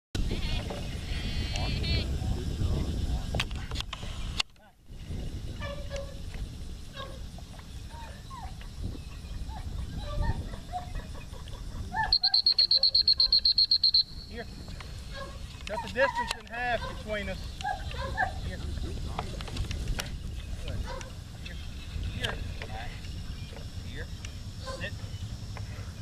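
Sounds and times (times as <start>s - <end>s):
small birds chirping: 7.0s - 26.0s
high-pitched pulsing signal: 12.1s - 15.0s.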